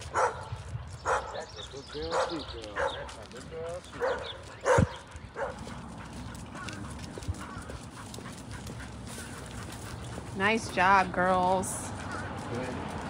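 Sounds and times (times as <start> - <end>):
dog barking: 0.1 - 3.2, 3.9 - 7.8.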